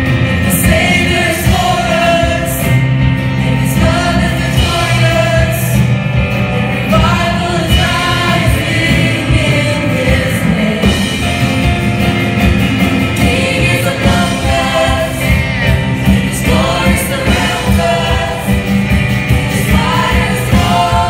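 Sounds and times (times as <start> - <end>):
choir singing: 0.0 - 21.0
keyboard accompaniment: 0.0 - 21.0.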